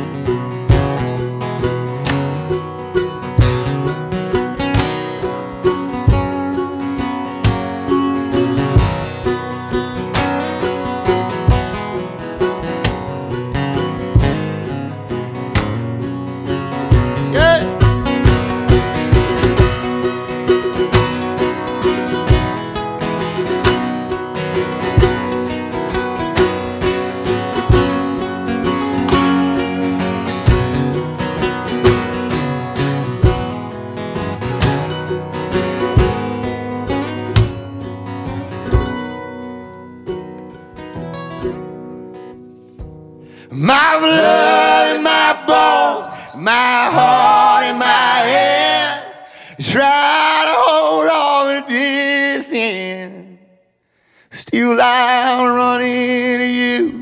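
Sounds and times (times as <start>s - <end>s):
acoustic guitars strumming: 0.0s - 57.0s.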